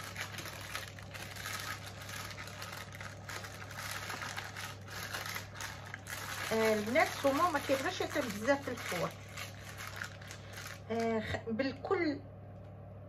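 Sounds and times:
baking paper rustling and crinkling: 0.0 - 11.4.

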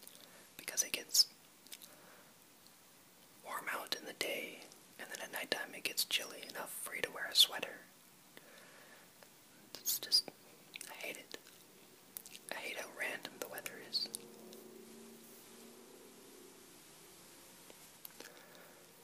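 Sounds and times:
person whispering: 0.6 - 1.4, 3.4 - 7.9, 9.7 - 11.5, 12.5 - 14.2.

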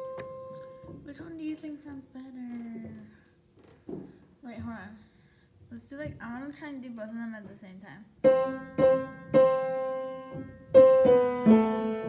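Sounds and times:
piano melody: 0.0 - 1.1, 8.2 - 12.0.

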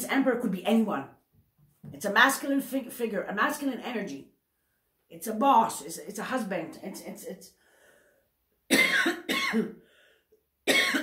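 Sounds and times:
woman coughing: 8.7 - 9.8, 10.7 - 11.0.

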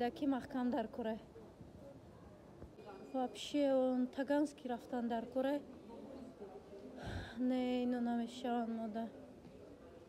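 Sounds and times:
woman speaking: 0.0 - 1.2, 3.0 - 5.6, 7.3 - 9.1.

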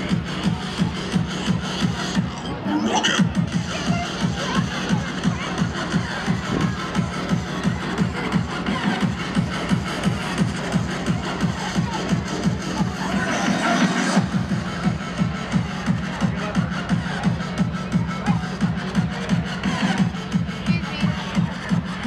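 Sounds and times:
loud electronic dance music: 0.0 - 22.0.

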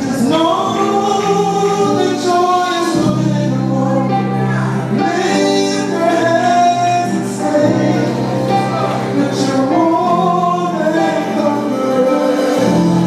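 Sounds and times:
male vocal group singing: 0.0 - 13.0
electric bass: 2.8 - 13.0.

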